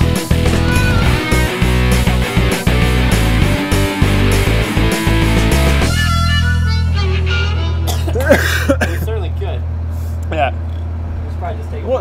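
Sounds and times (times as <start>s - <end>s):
men talking: 8.1s - 12.0s.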